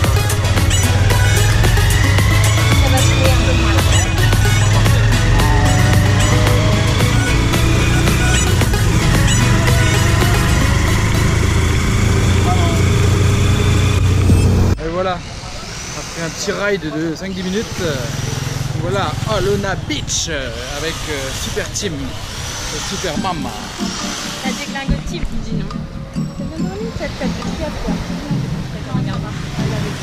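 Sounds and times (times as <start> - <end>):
background music: 0.0 - 14.8, 23.1 - 30.0
motorcycle engine running: 0.0 - 30.0.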